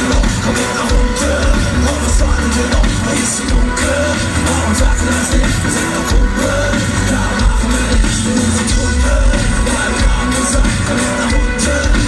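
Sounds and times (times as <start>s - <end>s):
person singing: 0.0s - 12.0s
pulsing bass beat: 0.0s - 12.0s.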